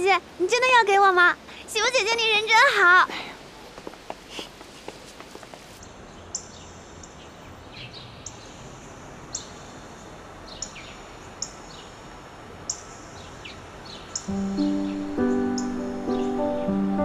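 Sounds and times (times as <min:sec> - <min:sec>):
birds chirping: 0:12.7 - 0:17.0.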